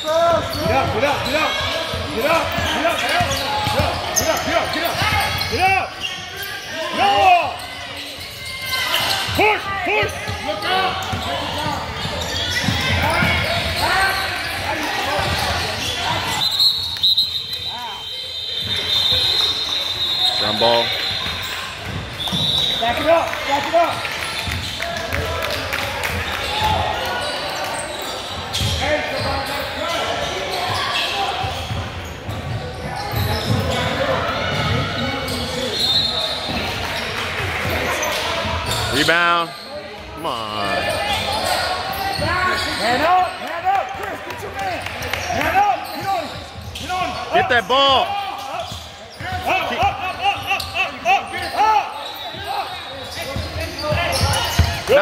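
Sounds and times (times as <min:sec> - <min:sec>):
players and spectators voices: 0:00.0 - 0:55.0.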